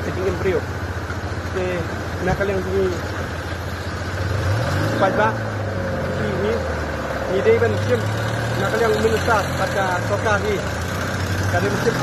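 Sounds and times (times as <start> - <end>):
car engine running at low speed: 0.0 - 12.0
vehicle driving through water: 0.0 - 12.0.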